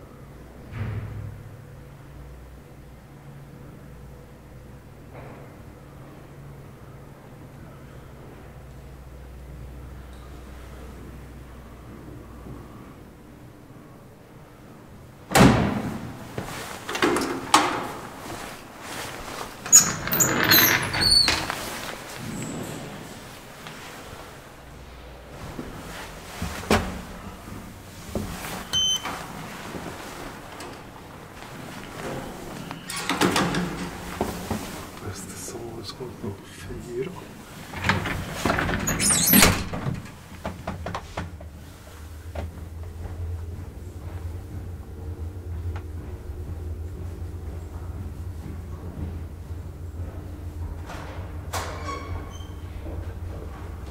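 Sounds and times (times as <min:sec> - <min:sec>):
elevator machinery humming: 0:00.0 - 0:53.9
elevator gate clacking shut: 0:19.6 - 0:23.0, 0:32.7 - 0:34.6, 0:37.5 - 0:40.8, 0:50.9 - 0:52.7
elevator clicks: 0:28.6 - 0:29.4, 0:30.4 - 0:34.6.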